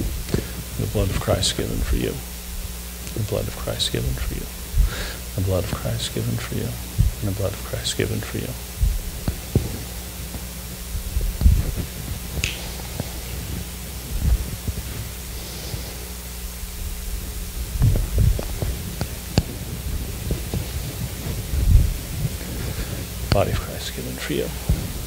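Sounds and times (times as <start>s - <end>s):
soft low thuds: 0.0s - 5.4s, 6.8s - 7.4s, 8.6s - 15.4s, 16.1s - 23.2s
steady low hum: 0.0s - 25.0s
sharp clicks: 12.4s - 12.6s.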